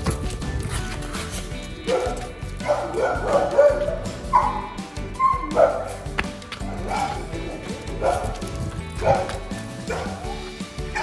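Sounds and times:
background music: 0:00.0 - 0:11.0
dog barking and yelping: 0:01.8 - 0:06.0, 0:06.7 - 0:08.4, 0:09.0 - 0:11.0.

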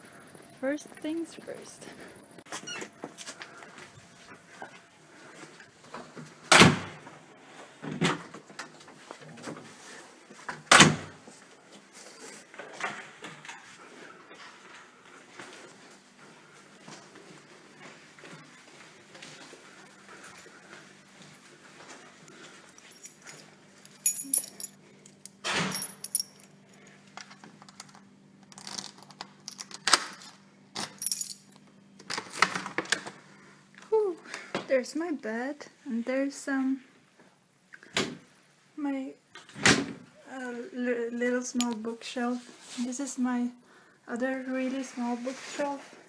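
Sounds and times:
keys jangling: 0:22.5 - 0:26.6, 0:30.8 - 0:31.6.

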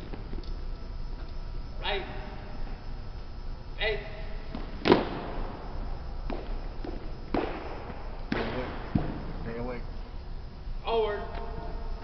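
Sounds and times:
sharp knocks echoing: 0:04.5 - 0:09.5.

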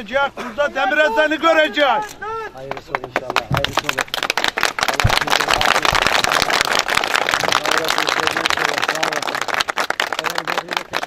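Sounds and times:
crowd clapping: 0:02.6 - 0:11.0.

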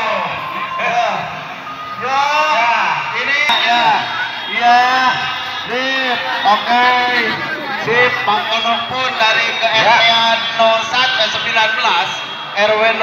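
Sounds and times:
crowd talking and calling out: 0:00.0 - 0:13.0.

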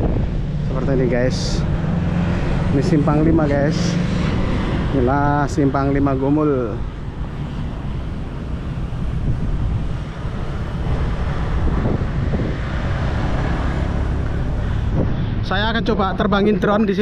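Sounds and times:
wind buffeting microphone: 0:00.0 - 0:16.6
road traffic: 0:00.0 - 0:17.0.

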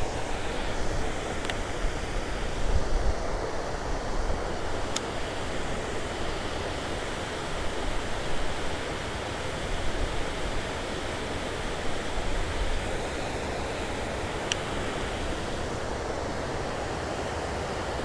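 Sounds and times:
river running over rocks: 0:00.0 - 0:18.0
wind on microphone: 0:00.0 - 0:18.0.

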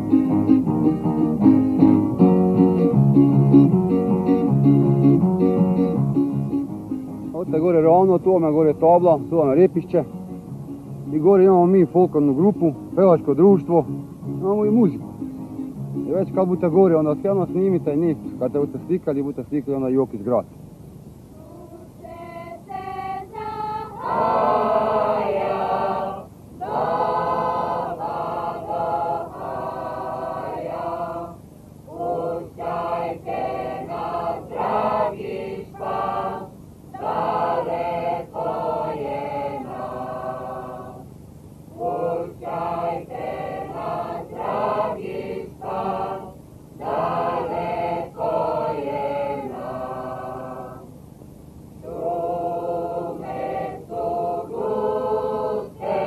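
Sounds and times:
mixed choir singing folk song: 0:21.4 - 0:41.1, 0:41.7 - 0:51.0, 0:51.8 - 0:56.0.

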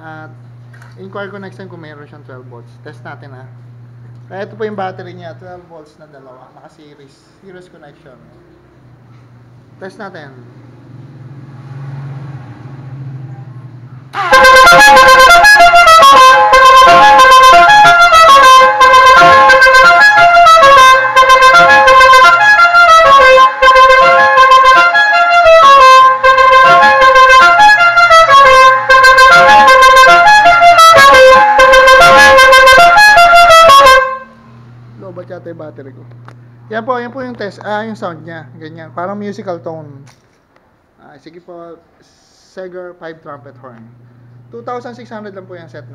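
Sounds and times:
musical air horn playing a tune: 0:14.1 - 0:35.1.

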